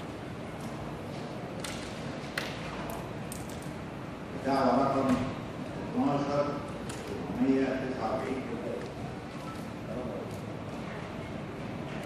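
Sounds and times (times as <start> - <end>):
hall room noise hiss and hum: 0.0 - 12.0.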